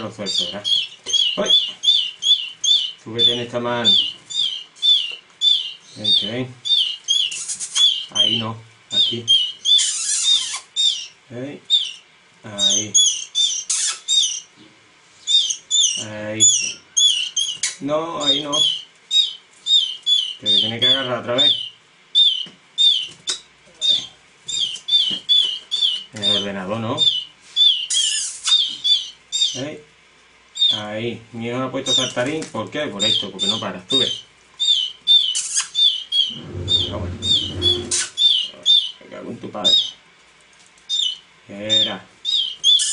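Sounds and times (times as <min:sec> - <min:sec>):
bird chick begging chirps: 0:00.0 - 0:29.8, 0:30.5 - 0:30.9, 0:31.8 - 0:40.0, 0:40.8 - 0:42.9.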